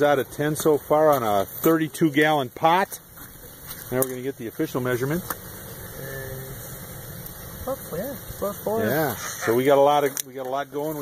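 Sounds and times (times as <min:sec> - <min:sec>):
sap boiling in a pan: 0:00.0 - 0:11.0.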